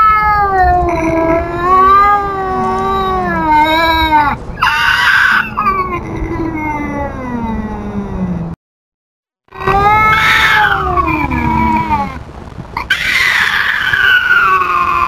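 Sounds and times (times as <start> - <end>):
cat yowling: 0.0 - 8.5, 9.5 - 12.2, 12.8 - 15.0.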